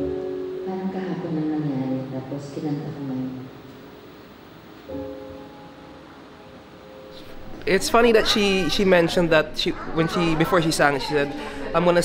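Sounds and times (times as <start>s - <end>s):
keyboard chords: 0.0s - 12.0s.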